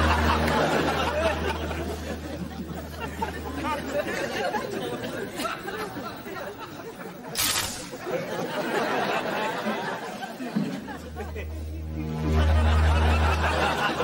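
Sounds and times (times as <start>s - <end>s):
crowd chatter: 0.0s - 14.0s
static spark crackle: 7.3s - 8.2s.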